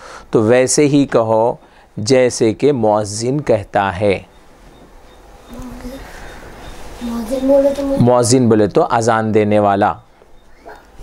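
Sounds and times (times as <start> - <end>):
faint steady buzz: 3.9 - 8.7.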